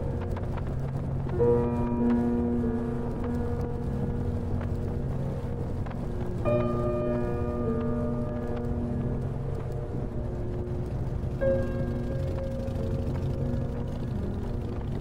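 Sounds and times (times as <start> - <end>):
music with sustained notes: 0.0 - 15.0
wind: 0.0 - 15.0
motorcycle engine rumbling: 7.1 - 15.0.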